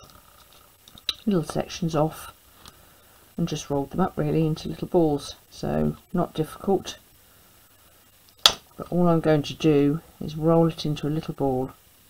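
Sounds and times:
woman speaking: 1.2 - 2.4, 3.4 - 7.0, 8.8 - 11.8.

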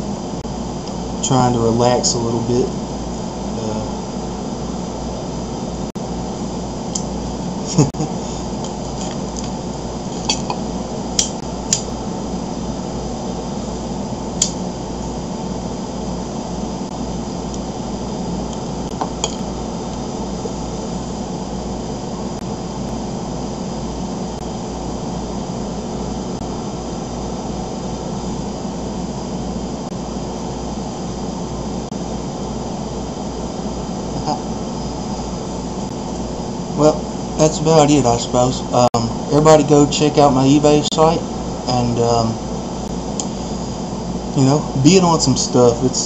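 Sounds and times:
room hum and hiss: 0.0 - 46.0.

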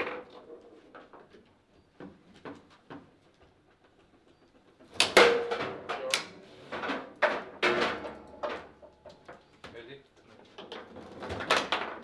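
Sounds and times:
foosball ball and rods knocking: 0.0 - 0.8, 4.9 - 9.3.

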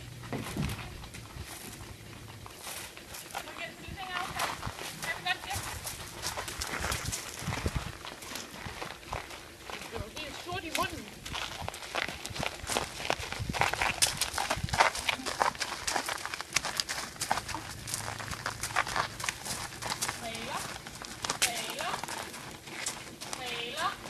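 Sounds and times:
horse hooves clopping: 0.0 - 24.0
person's voice: 23.4 - 24.0.

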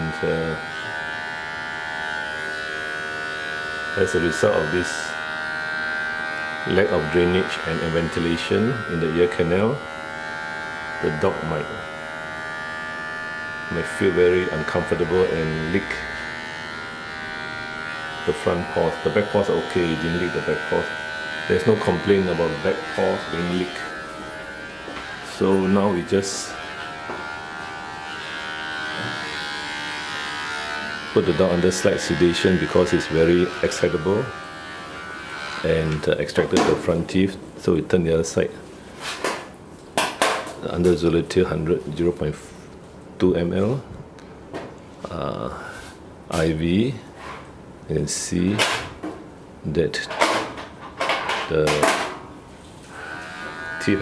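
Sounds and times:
small motor buzzing hum: 0.0 - 36.0, 52.1 - 54.0.

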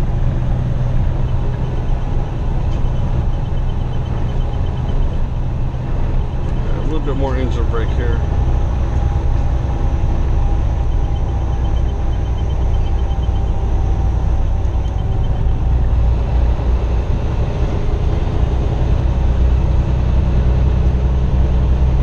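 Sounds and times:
road noise inside cab: 0.0 - 22.0
truck diesel engine drone: 0.0 - 22.0.

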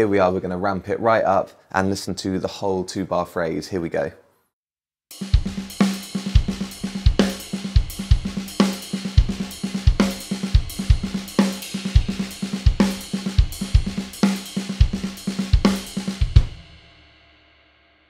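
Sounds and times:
drum kit playing triplet groove: 5.1 - 16.9.

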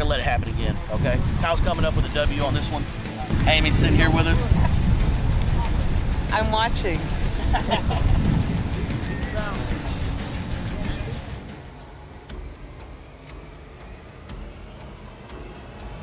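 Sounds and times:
wind rumble on microphone: 0.0 - 11.3
woman laughing: 7.3 - 8.4.

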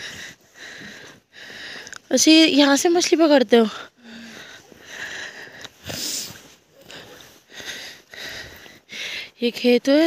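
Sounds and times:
person breathing and sniffing: 3.9 - 9.4.

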